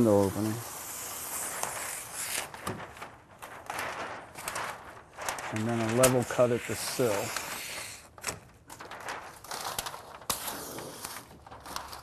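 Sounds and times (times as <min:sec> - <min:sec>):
sheet crinkling: 0:00.0 - 0:12.0
utility knife slicing wrap: 0:00.3 - 0:02.8, 0:09.4 - 0:12.0.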